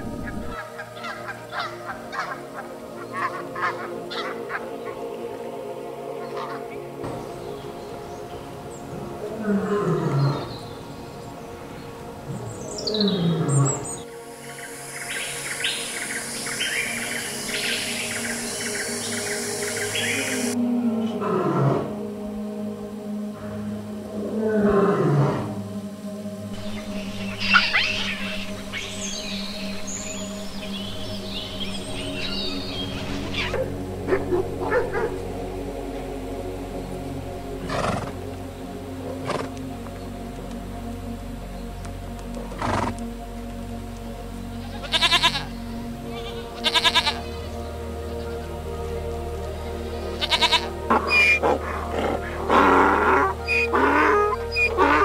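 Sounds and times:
birds chirping: 0.0 - 21.3, 25.5 - 55.0
background music: 0.0 - 55.0
lions roaring: 50.9 - 55.0.

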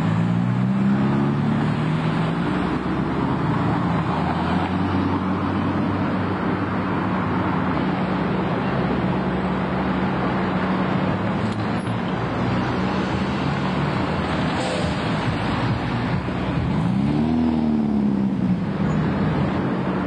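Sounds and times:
traffic noise: 0.0 - 20.0.

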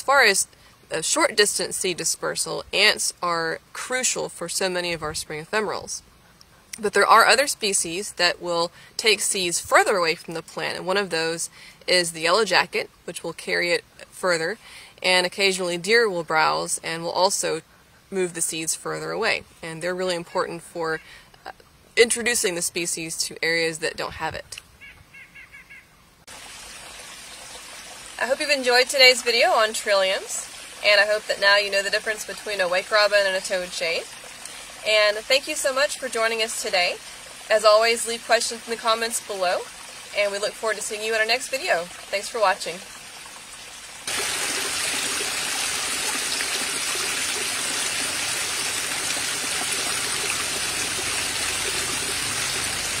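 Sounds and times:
rocky creek rushing: 26.3 - 53.0.

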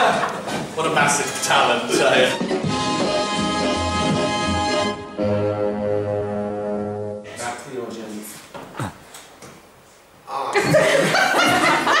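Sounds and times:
people talking and laughing: 0.0 - 0.7
held musical chord: 2.0 - 7.3.

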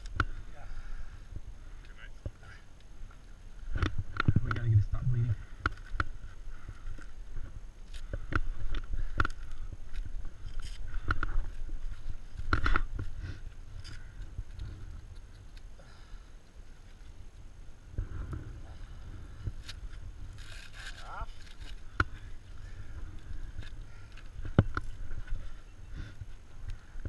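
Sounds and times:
wind rumble on microphone: 3.4 - 15.6.

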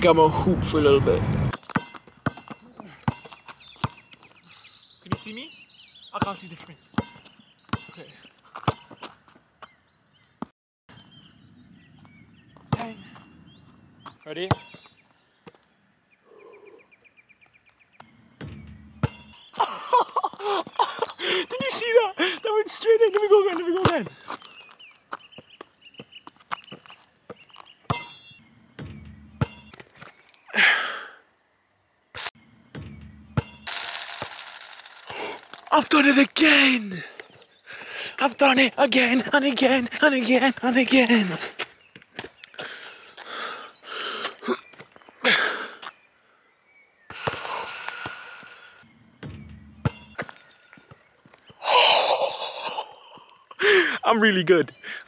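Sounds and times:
basketball dribbled on asphalt: 1.5 - 4.1, 6.2 - 9.2, 18.4 - 19.3, 25.4 - 29.9, 32.8 - 33.7, 47.1 - 48.3, 49.2 - 51.0.

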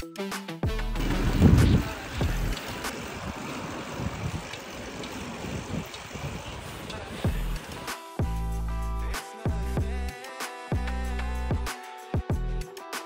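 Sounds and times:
bicycle rumbling over brick paving: 0.9 - 7.9
wind buffeting microphone: 1.0 - 7.9.

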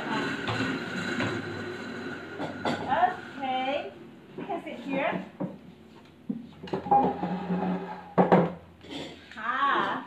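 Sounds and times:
chair legs scraping floor: 0.0 - 3.2, 4.4 - 9.3
chair knocking down: 6.6 - 9.0.

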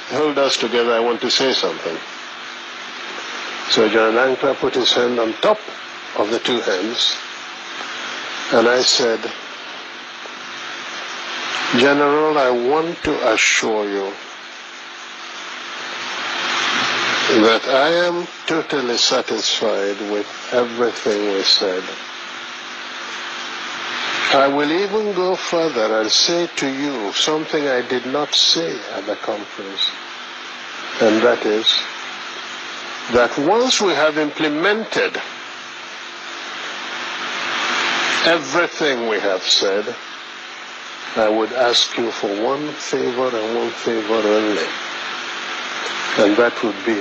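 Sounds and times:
old recording hiss: 0.0 - 47.0.

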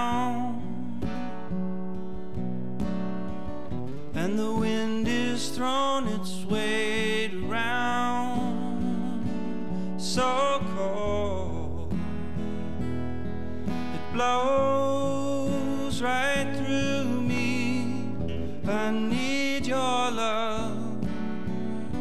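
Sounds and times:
man singing: 0.0 - 1.6, 4.1 - 12.6, 13.9 - 22.0
strummed acoustic guitar: 0.0 - 22.0.

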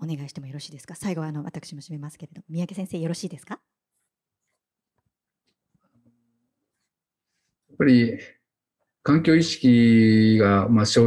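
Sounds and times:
person speaking: 7.8 - 8.3, 9.1 - 11.0.

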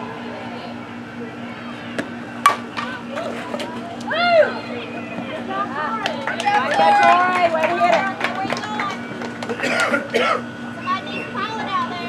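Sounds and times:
voices: 0.0 - 12.0
bat cracking a ball: 2.0 - 3.7.

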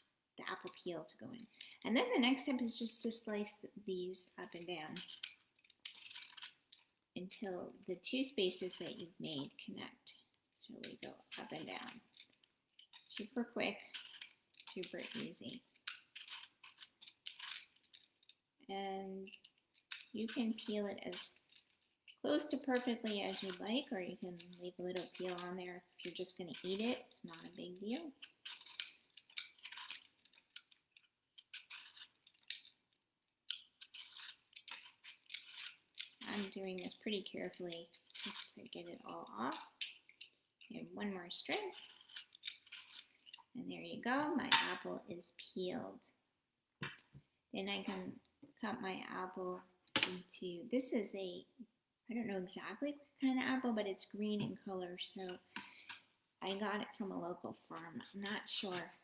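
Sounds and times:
peeler scraping apple peel: 4.4 - 6.8, 10.8 - 18.1, 19.2 - 30.8, 31.4 - 32.8, 33.5 - 40.4, 41.4 - 43.4.

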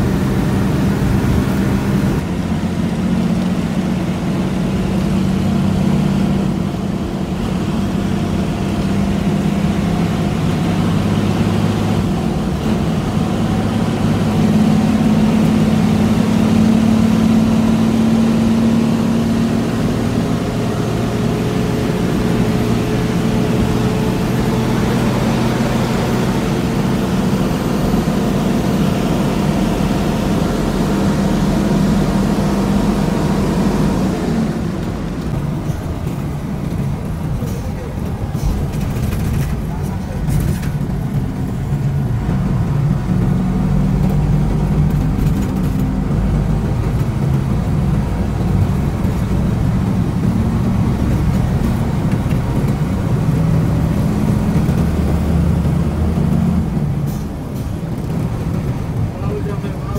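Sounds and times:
bus engine drone: 0.0 - 59.9
road rumble: 0.0 - 59.9.

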